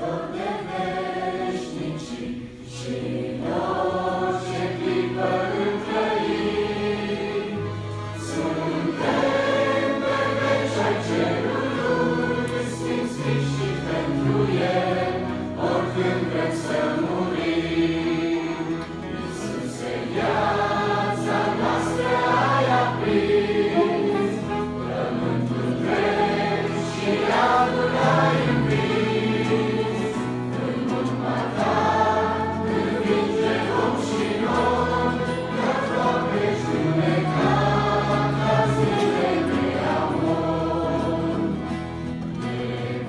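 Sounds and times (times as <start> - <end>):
choir of young voices singing hymn: 0.0 - 43.0.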